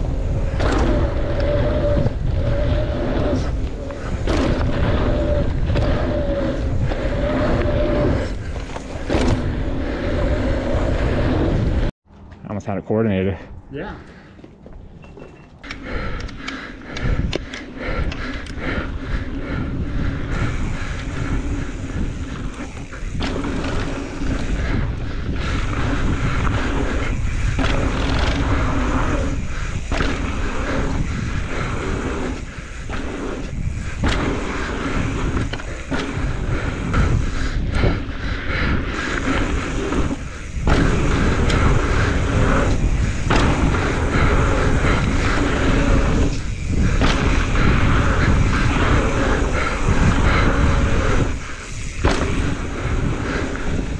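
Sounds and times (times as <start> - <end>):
bike rattling over bumps: 0.0 - 11.9, 14.7 - 53.9
bike tyres rolling on dirt: 0.0 - 12.4, 14.1 - 53.9
wind rumbling on microphone: 0.0 - 12.4, 13.4 - 53.9.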